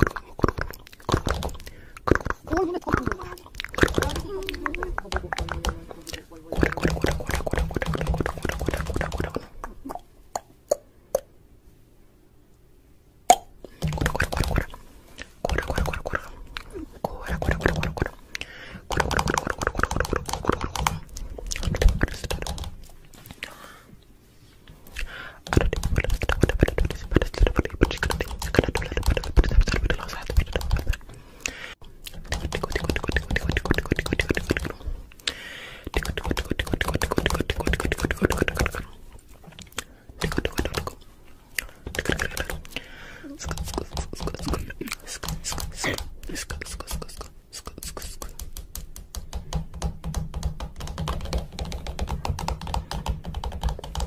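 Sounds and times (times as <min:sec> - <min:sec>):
sharp clicks and taps: 0:43.4 - 0:54.0.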